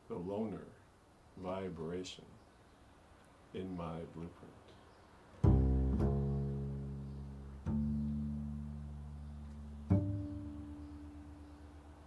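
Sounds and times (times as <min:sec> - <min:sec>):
double bass plucked notes: 0:05.4 - 0:12.0.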